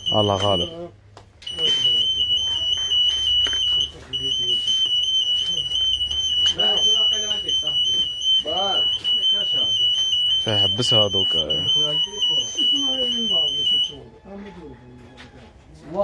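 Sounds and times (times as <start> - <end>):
pulsing electronic alarm tone: 0.0 - 14.3
voices talking: 0.0 - 16.0.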